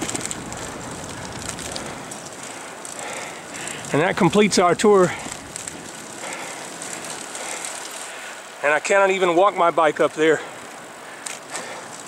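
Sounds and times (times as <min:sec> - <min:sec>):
tyres rolling on pavement: 0:00.0 - 0:12.0.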